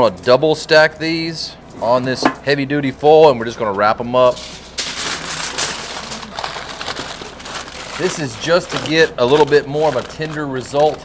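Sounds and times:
foil crinkling and crumpling: 4.3s - 11.0s.

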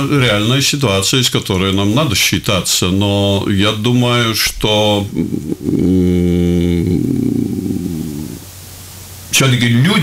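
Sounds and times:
man's drawn-out hesitation sound: 0.0s - 8.4s.

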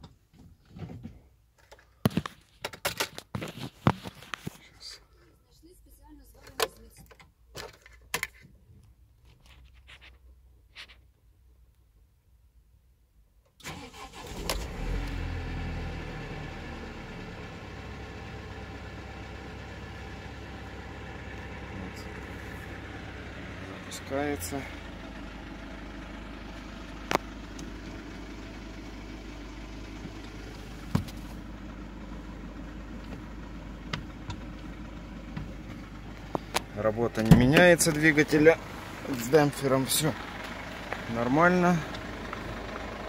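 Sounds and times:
diesel engine starting and idling: 13.6s - 43.0s.

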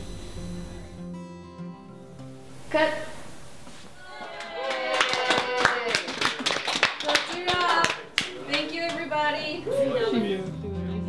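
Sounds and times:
group applauding: 4.0s - 10.2s.

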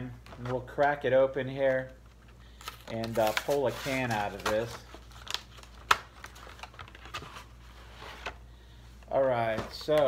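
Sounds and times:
cardboard rustling and crinkling: 1.6s - 8.4s, 9.0s - 10.0s.

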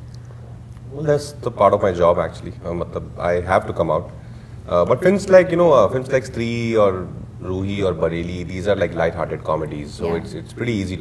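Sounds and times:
man talking: 0.9s - 11.0s.

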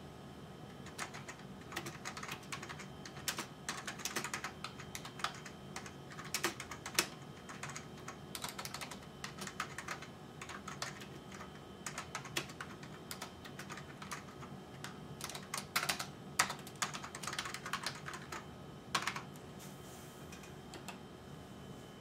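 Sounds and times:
faint steady hum: 0.0s - 22.0s.

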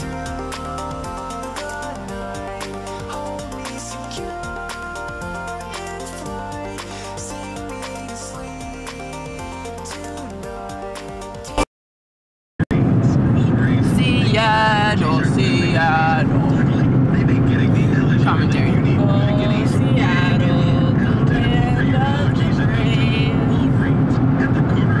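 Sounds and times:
road and engine rumble: 0.0s - 11.1s, 12.6s - 25.0s.

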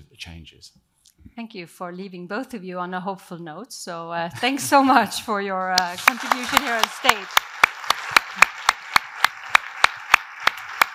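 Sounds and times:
audience applauding: 5.8s - 10.9s
close hands clapping sharply: 5.8s - 10.9s.

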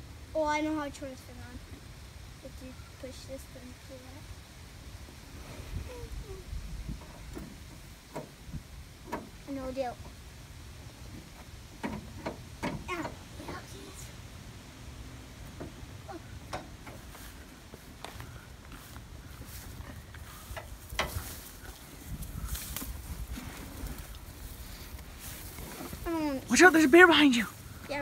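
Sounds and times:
low steady rumble: 0.0s - 28.0s.

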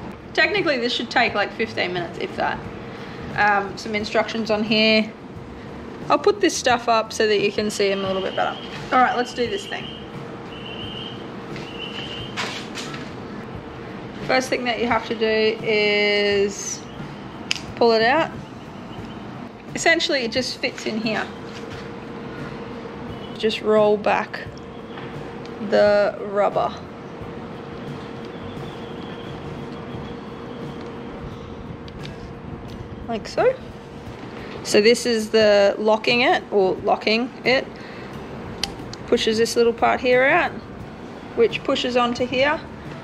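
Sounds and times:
constant mid-pitched tone: 0.0s - 12.4s, 13.2s - 38.3s, 39.0s - 43.0s
mechanical hum: 0.0s - 43.0s.

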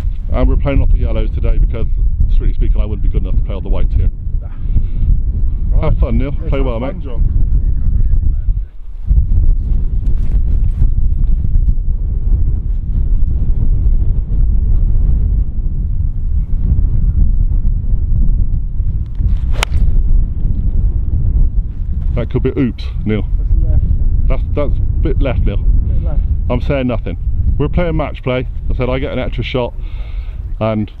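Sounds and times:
wind buffeting microphone: 0.0s - 31.0s
golf club striking ball: 19.5s - 20.0s.

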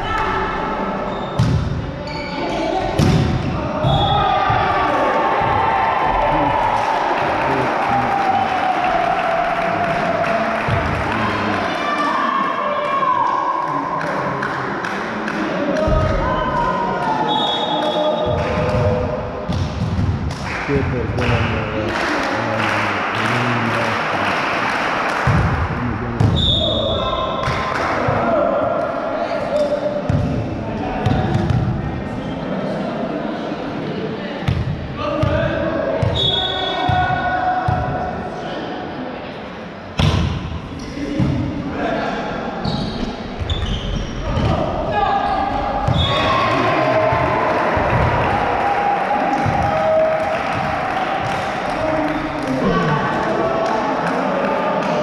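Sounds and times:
players and spectators shouting: 3.8s - 14.3s, 21.7s - 24.5s, 44.2s - 55.0s
volleyball hits and thuds: 40.0s - 40.4s.

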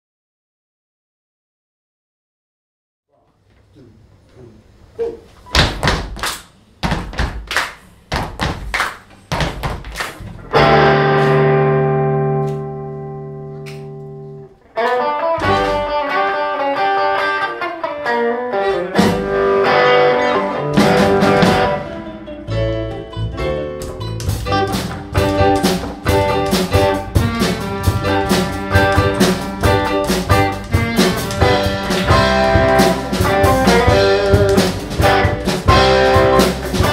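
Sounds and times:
live rock band playing: 10.5s - 36.9s
long held band chord: 26.9s - 36.6s.

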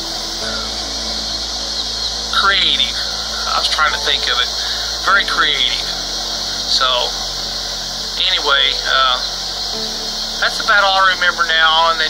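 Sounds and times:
low hum: 0.0s - 12.0s
steady hiss: 0.0s - 12.0s.

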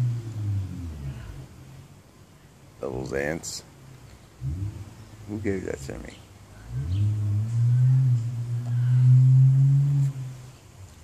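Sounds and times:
man humming thoughtfully: 6.6s - 10.3s.

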